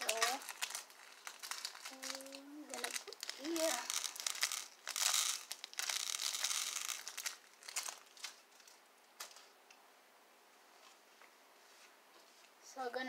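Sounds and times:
plastic bag crinkling: 0.0 - 9.5.

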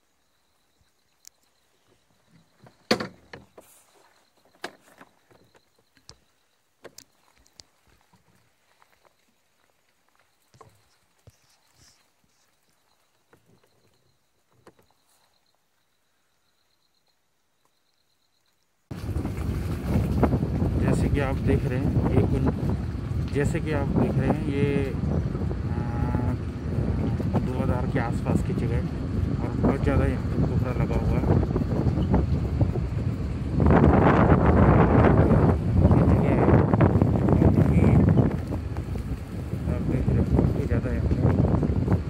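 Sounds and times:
faint footsteps: 7.0 - 14.0, 37.3 - 39.7
vehicle engine and road rumble: 18.9 - 42.0.

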